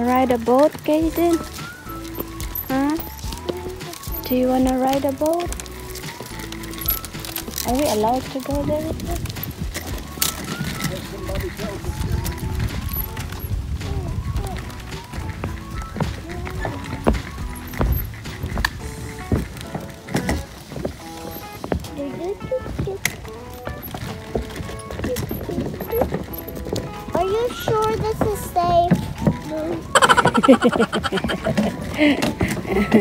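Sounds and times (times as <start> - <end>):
wind rumbling on microphone: 0.0 - 21.0
background music: 0.0 - 33.0
footsteps on wooden boardwalk: 0.0 - 33.0
stroller wheels on wooden boards: 0.0 - 33.0.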